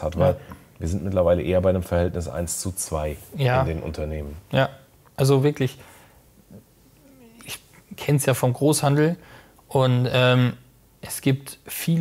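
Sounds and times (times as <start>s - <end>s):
man speaking: 0.0s - 5.8s, 6.5s - 12.0s.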